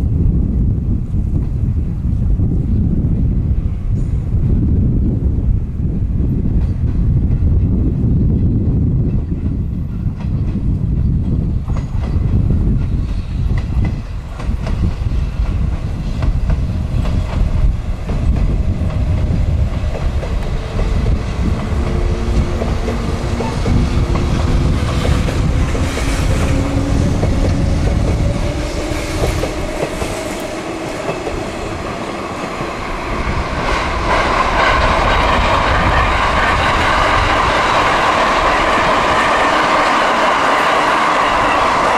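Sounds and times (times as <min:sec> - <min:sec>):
electric train rumbling on rails: 0:00.0 - 0:41.9
wheels clacking over rail joints: 0:16.2 - 0:41.9.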